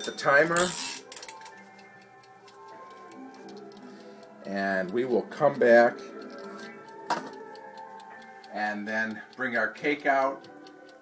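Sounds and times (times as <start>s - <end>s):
faint music: 0.0s - 11.0s
kitchen timer ticking: 1.4s - 11.0s.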